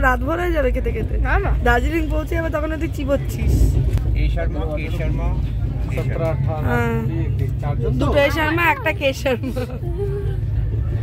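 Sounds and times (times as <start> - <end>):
passengers' voices: 0.0 - 11.0
train rumbling: 0.0 - 11.0.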